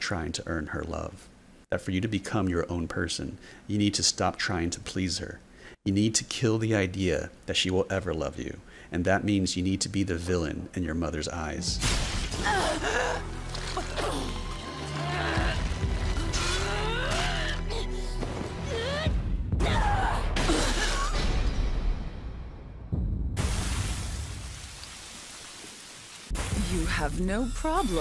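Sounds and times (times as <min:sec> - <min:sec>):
background music: 0:11.2 - 0:23.4.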